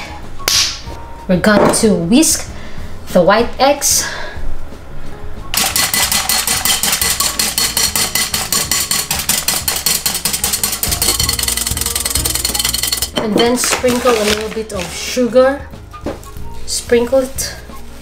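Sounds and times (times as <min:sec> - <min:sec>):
background music: 0:00.0 - 0:18.0
whisk clicking on glass bowl: 0:05.6 - 0:13.4.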